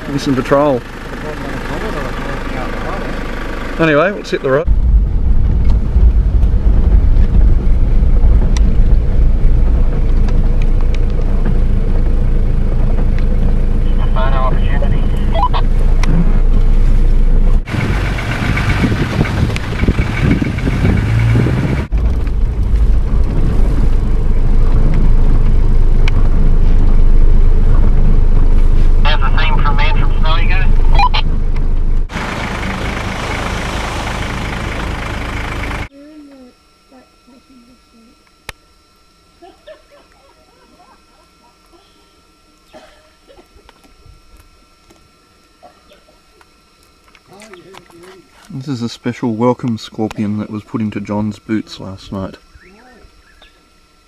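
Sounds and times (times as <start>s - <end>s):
engine and road noise rumble: 0.0s - 35.9s.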